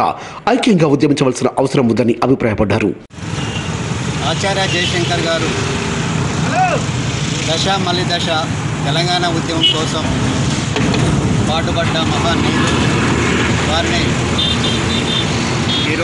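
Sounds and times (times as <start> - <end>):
highway traffic passing: 3.1 - 16.0.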